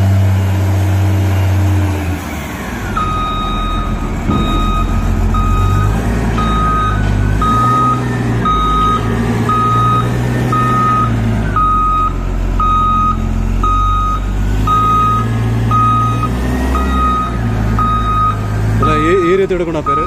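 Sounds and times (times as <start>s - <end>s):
diesel engine running: 0.0s - 20.0s
back-up alarm beeping: 2.9s - 20.0s.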